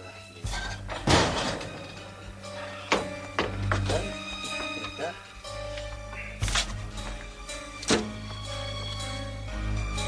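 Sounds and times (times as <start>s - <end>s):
refrigerator door slamming: 1.0s - 1.7s.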